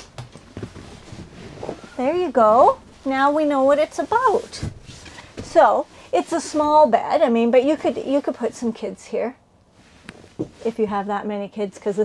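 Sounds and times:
faint rustling: 0.4 - 8.9, 9.7 - 11.2.

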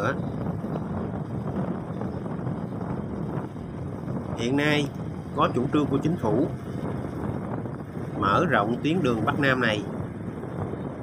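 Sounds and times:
road and wind noise: 0.0 - 11.0
wind buffeting microphone: 0.0 - 11.0.

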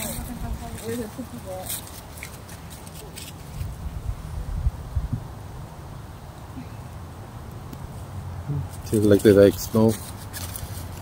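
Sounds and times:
footsteps crunching dry leaves: 0.0 - 4.0, 8.7 - 11.0.

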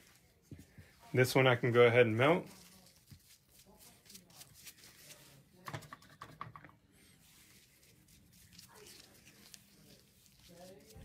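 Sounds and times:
brush and hands handling hair: 0.0 - 5.6, 7.0 - 11.0.

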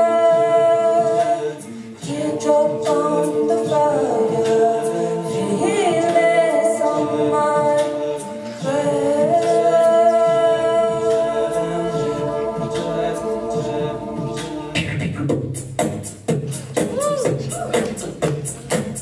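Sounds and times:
a cappella choir singing chords: 0.0 - 19.0
vocal percussion: 0.0 - 19.0.

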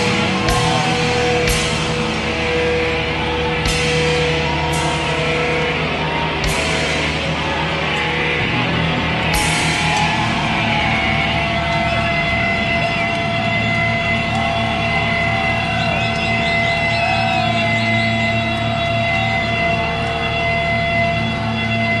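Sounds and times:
electric guitar feedback: 0.0 - 22.0.

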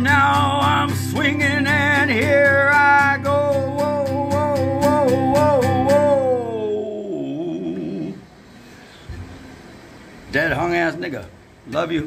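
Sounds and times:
man singing held note: 3.2 - 8.2.

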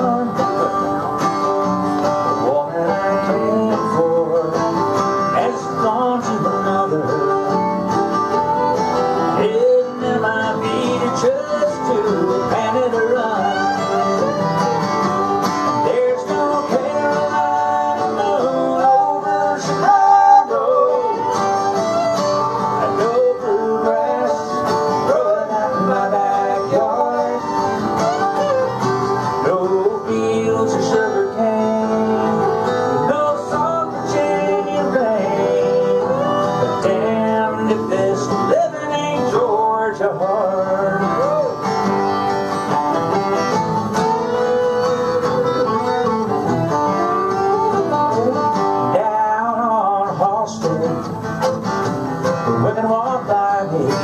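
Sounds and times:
fiddle melody: 0.0 - 49.5
acoustic guitar: 0.0 - 54.0.

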